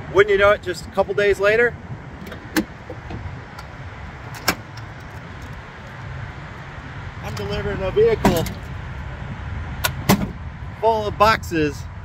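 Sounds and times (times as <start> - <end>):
low vehicle rumble: 0.0 - 12.0
truck bed cover click: 2.2 - 3.2.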